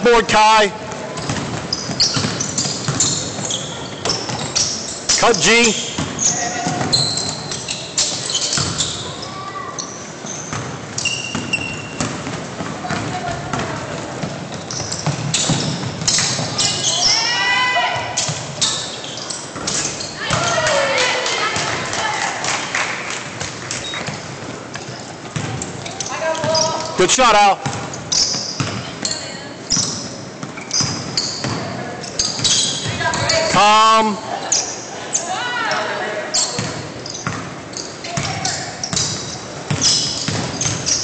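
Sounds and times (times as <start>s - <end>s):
players calling out: 0.0s - 12.0s, 12.8s - 23.0s
basketball bouncing on wooden floor: 0.8s - 4.6s, 5.9s - 7.3s, 10.5s - 16.7s, 23.4s - 26.8s, 27.6s - 29.1s, 29.7s - 31.7s, 38.1s - 41.0s.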